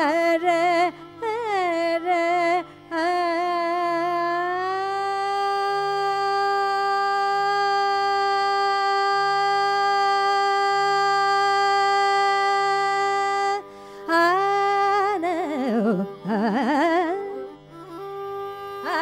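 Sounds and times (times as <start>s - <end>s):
tanpura drone: 0.0s - 19.0s
woman singing long note: 14.1s - 19.0s.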